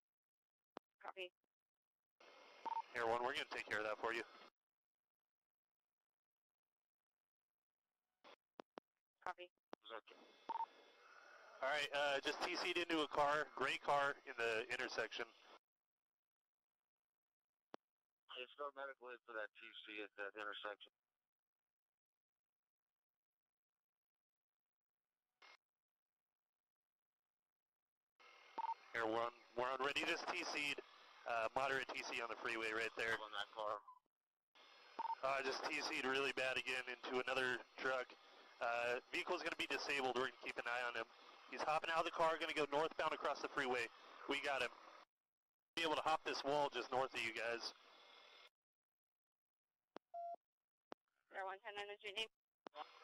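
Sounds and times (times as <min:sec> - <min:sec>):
radio hiss: 0:11.6 - 0:15.2, 0:29.0 - 0:33.6, 0:35.2 - 0:44.7.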